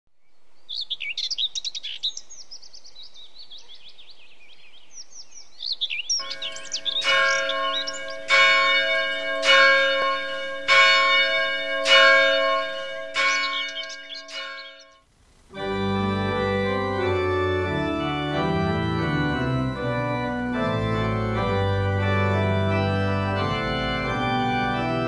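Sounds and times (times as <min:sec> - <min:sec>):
birds chirping: 0:00.2 - 0:15.0
church bell tolling: 0:06.2 - 0:15.0, 0:15.6 - 0:25.0.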